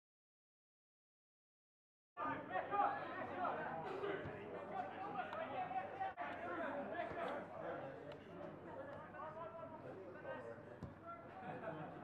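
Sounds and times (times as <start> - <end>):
people chattering: 2.2 - 12.0.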